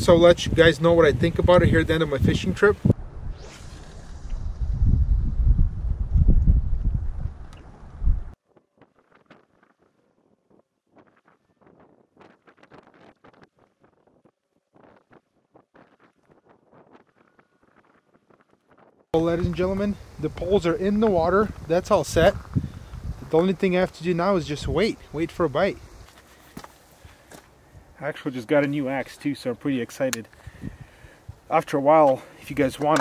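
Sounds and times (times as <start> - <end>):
wind buffeting microphone: 0.0 - 8.4, 10.9 - 26.1, 30.4 - 31.5.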